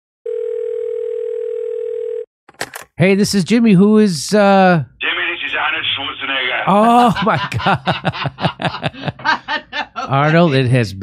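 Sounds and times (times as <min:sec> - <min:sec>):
telephone line tone: 0:00.2 - 0:02.3.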